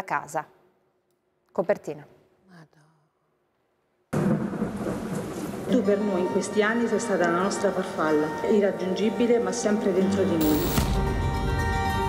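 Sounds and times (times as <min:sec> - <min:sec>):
thunder rumble: 0:04.1 - 0:06.2
heavy rain hiss: 0:10.4 - 0:10.8.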